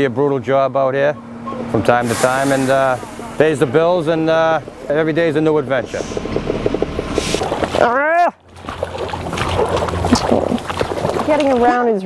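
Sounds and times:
low traffic rumble: 0:00.0 - 0:12.0
garbage truck engine running: 0:01.2 - 0:11.7
feet and paws sloshing through slush: 0:08.6 - 0:12.0.

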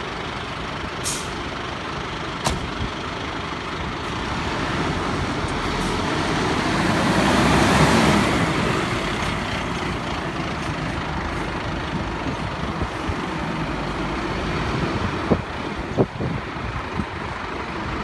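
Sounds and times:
fire engine diesel engine passing: 0:00.0 - 0:18.0.

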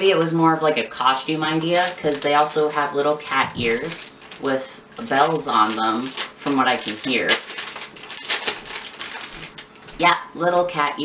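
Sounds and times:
plastic packet crinkling: 0:00.6 - 0:10.2.

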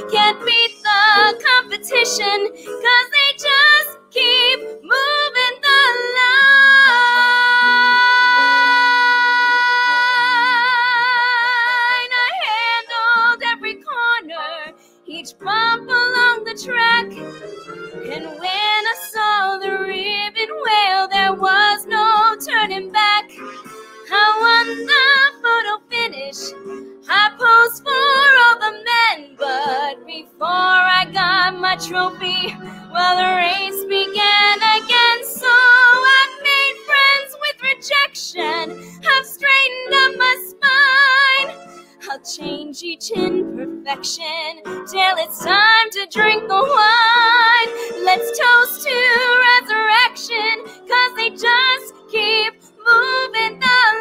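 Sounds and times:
woman singing: 0:00.0 - 0:17.2, 0:18.0 - 0:54.0
instrumental accompaniment: 0:14.7 - 0:54.0.

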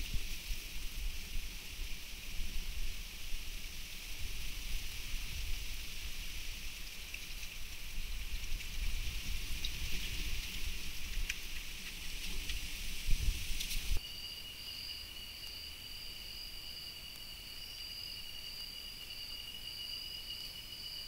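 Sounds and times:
high-pitched hiss: 0:00.0 - 0:21.0
faint clicks: 0:06.8 - 0:12.8.

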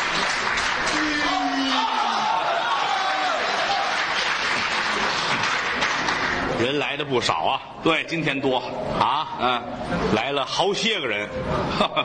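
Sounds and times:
audience applause: 0:00.0 - 0:06.6.

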